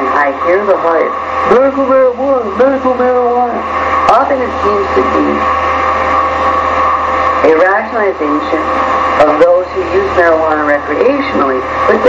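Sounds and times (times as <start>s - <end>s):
loud electrical hum: 0.0s - 12.0s.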